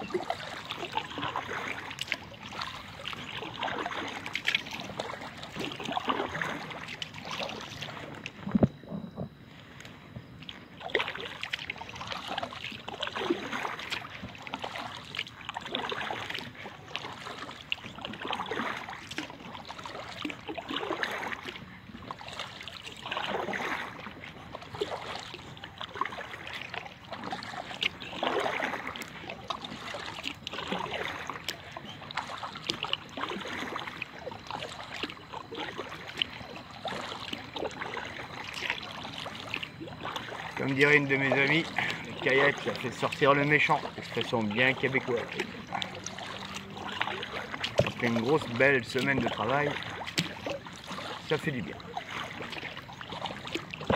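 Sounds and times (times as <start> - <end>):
kayak paddle swishing water: 0.0 - 53.9.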